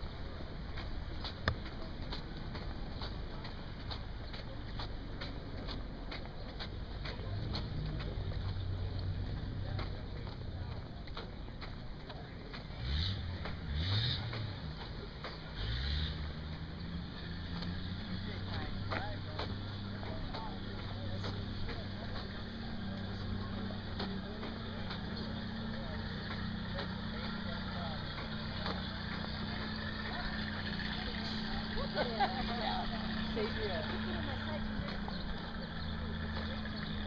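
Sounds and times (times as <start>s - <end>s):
vehicle engine revving: 0.0s - 37.0s.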